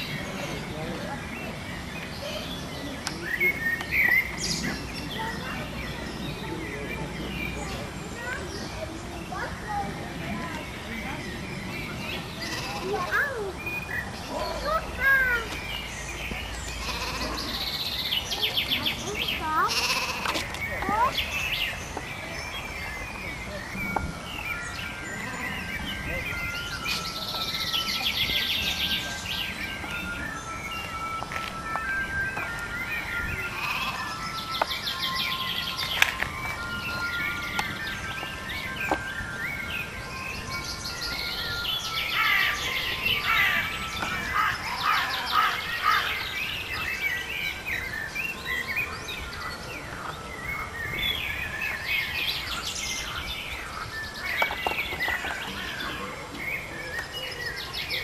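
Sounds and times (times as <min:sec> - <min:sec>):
songbirds chirping and trilling: 0:00.0 - 0:58.0.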